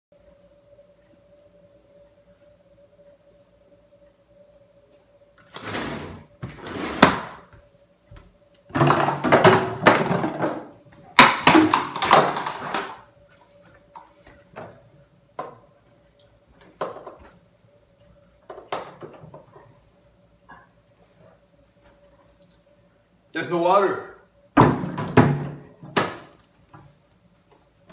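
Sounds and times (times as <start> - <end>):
faint steady hum: 0.1 - 27.9.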